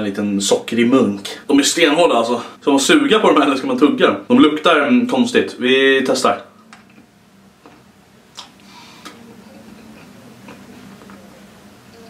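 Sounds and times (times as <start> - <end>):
mouth eating sounds: 6.8 - 11.2.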